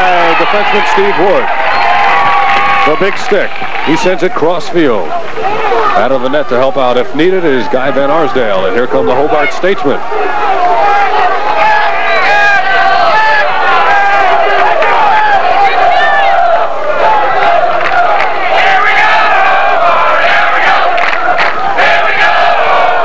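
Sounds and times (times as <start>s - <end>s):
stadium crowd shouting and cheering: 0.0s - 23.0s.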